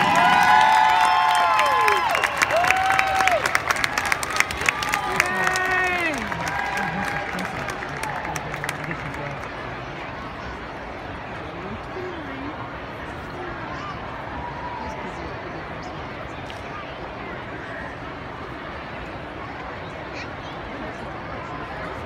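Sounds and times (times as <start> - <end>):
high whooping voices: 0.0 - 8.3
crowd clapping and cheering: 0.0 - 10.3
crowd murmur: 0.0 - 22.0.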